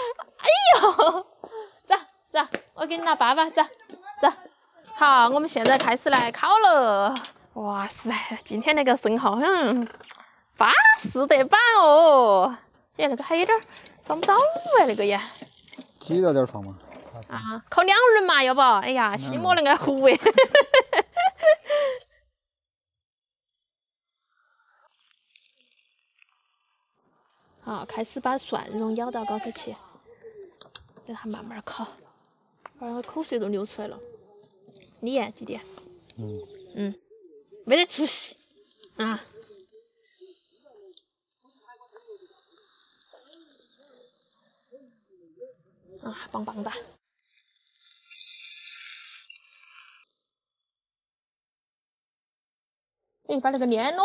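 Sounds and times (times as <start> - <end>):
oysters sizzling on a grill: 42.1 - 47.1.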